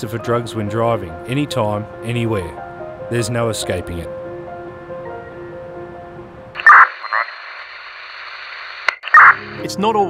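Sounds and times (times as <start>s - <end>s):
held music chord: 0.0s - 6.5s
radio click: 6.6s - 9.4s
radio squelch and static: 6.6s - 9.4s
steady radio hiss: 6.6s - 9.4s
radio chirp: 6.6s - 9.5s.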